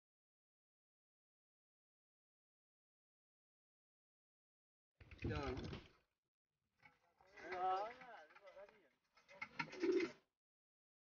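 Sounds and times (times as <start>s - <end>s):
bird cooing: 9.6s - 10.2s.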